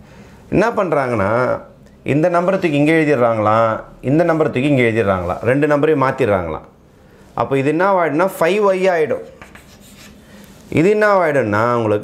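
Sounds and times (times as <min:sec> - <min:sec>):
chalk scratching on blackboard: 0:09.1 - 0:10.8.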